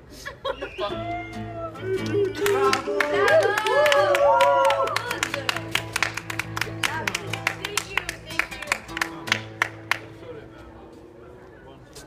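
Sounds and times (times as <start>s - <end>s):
people clapping: 1.9s - 10.2s.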